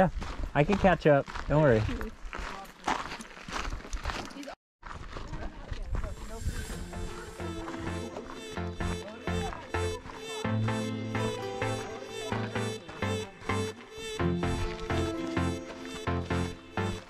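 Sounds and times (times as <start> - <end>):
footsteps crunching on gravel: 0.0 - 7.2, 13.8 - 16.7
background music with beat: 6.8 - 17.0.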